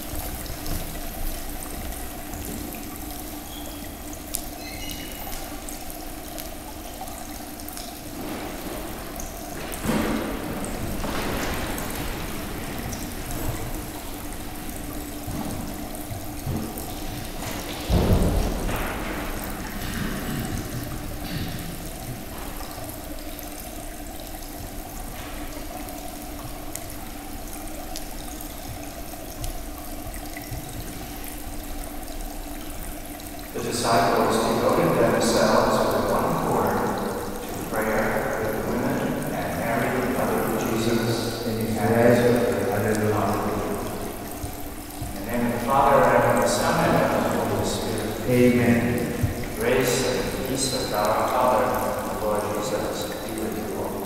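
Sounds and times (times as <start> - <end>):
low steady hum: 0.0 - 54.0
water trickling from fountain: 0.0 - 54.0.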